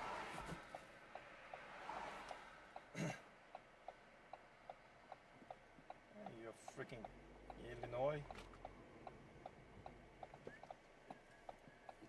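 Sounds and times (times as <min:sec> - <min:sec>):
turn signal ticking: 0:00.2 - 0:12.0.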